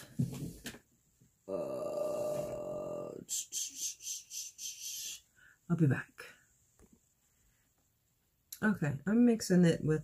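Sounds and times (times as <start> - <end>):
woman humming: 1.5 - 5.2.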